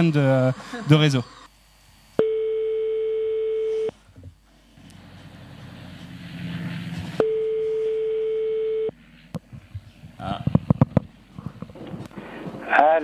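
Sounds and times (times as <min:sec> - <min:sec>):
telephone ringback tone: 0:02.2 - 0:04.0, 0:07.2 - 0:09.0.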